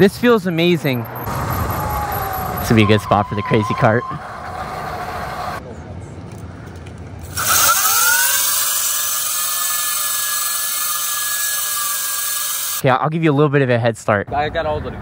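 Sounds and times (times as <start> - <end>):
electric motor whining: 7.3 - 12.8.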